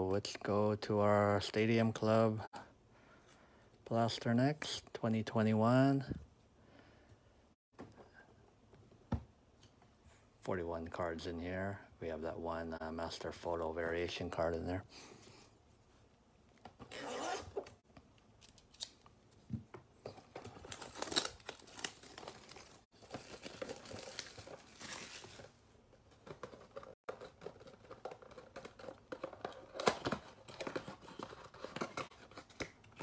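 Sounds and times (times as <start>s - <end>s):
plastic wrap crinkling: 20.6s - 25.6s.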